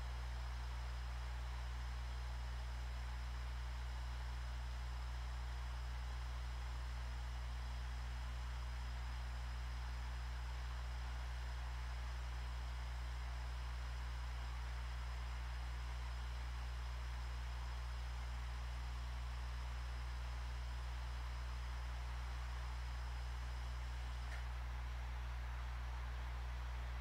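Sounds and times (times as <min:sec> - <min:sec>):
low electrical hum: 0:00.0 - 0:27.0.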